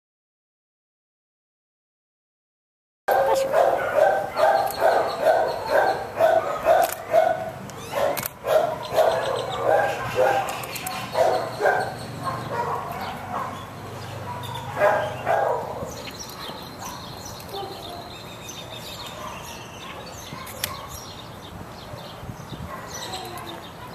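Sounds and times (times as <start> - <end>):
dog barking: 3.1 - 18.1, 19.1 - 21.1, 22.0 - 23.9.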